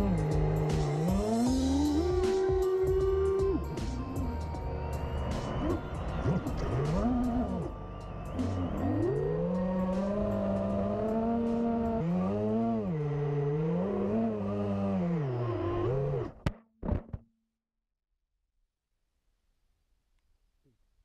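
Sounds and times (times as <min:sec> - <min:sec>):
quadcopter motors whining: 0:00.0 - 0:04.6, 0:05.3 - 0:16.3.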